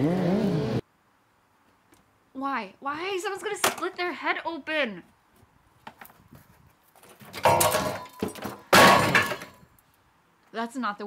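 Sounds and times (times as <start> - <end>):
wooden beam scraping and clattering: 5.9 - 9.6
heavy beam thudding on ground: 7.3 - 9.6.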